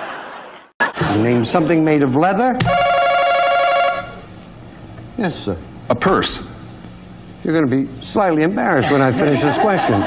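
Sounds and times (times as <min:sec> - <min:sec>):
game show buzzer tone: 0:02.7 - 0:04.3.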